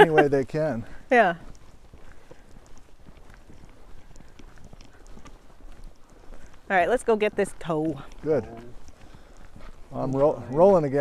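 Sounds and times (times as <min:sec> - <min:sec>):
footsteps on gravel: 0:00.0 - 0:11.0.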